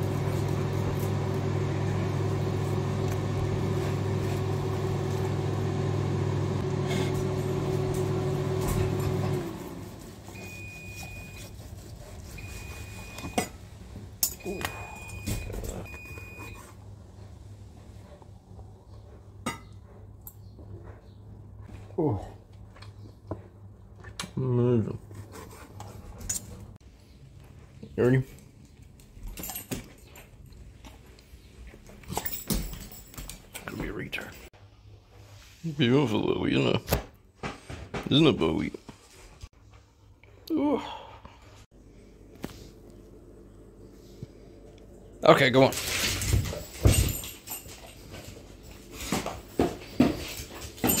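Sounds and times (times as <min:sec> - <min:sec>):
knife sawing through steak: 0:10.6 - 0:13.2.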